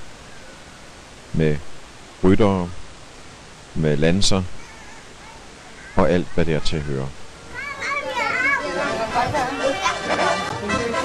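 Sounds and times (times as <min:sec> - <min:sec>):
children chattering and calling out: 0:04.5 - 0:11.0.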